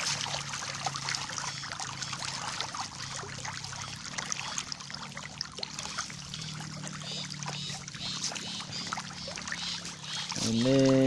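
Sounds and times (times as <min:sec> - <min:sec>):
fish splashing at surface: 0:00.0 - 0:11.0.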